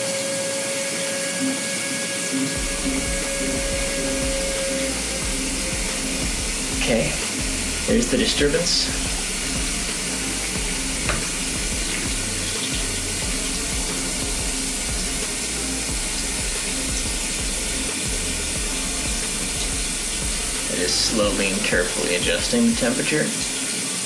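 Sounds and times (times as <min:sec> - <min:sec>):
shower water running: 0:00.0 - 0:24.0.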